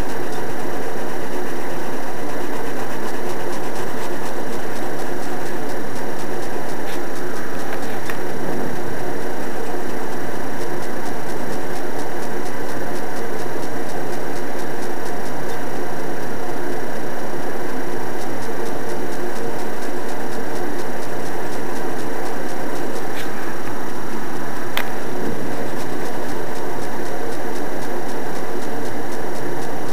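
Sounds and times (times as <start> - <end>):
constant hum: 0.0 - 29.9
faint regular ticking: 0.0 - 29.9.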